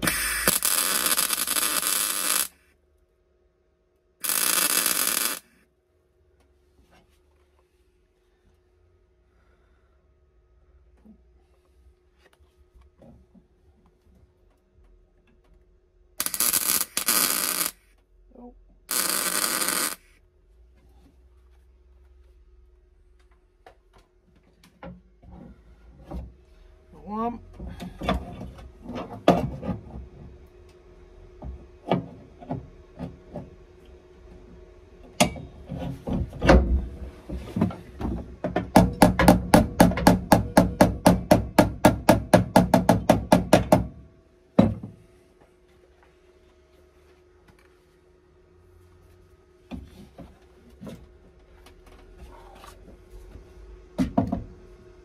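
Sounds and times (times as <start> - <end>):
welding crackle: 0.0 - 2.6, 4.2 - 5.6, 16.2 - 17.8, 18.9 - 20.1.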